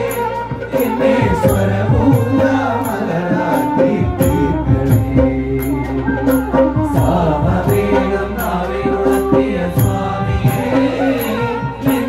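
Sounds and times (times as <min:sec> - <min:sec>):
keyboard: 0:00.0 - 0:12.0
men singing devotional chant: 0:00.0 - 0:12.0.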